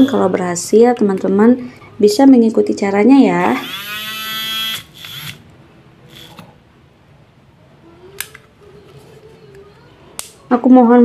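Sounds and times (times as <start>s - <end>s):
handheld whisk whining: 3.4s - 5.4s, 6.1s - 6.5s.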